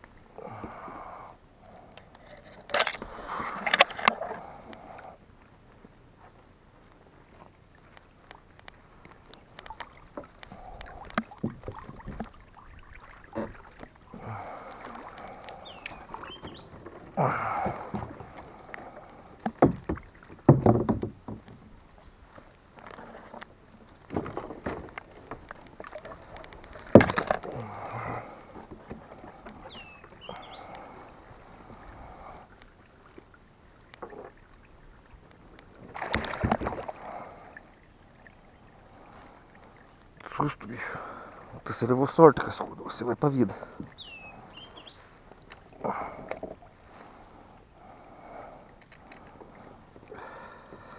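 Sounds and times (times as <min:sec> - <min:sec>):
water splashing: 0:07.2 - 0:50.9
knocks against plastic kayak hull: 0:19.5 - 0:21.5.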